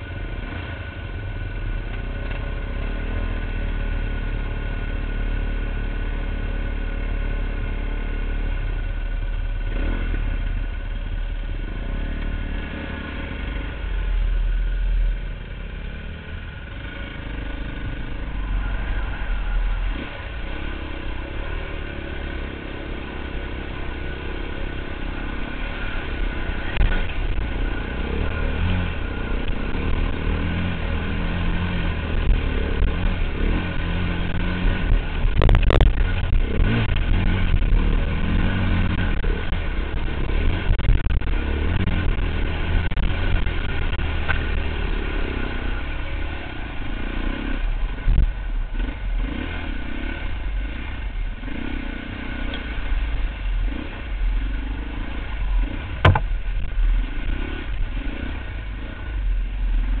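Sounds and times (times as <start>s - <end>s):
dirt bike engine under load: 55.8s - 56.7s
sharp knocks: 56.0s - 56.3s.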